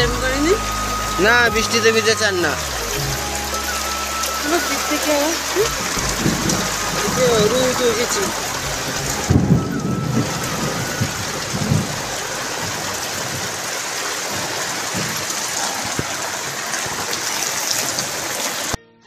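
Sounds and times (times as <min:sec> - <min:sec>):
low thumps: 0:00.0 - 0:13.5
steady rain falling: 0:00.0 - 0:18.8.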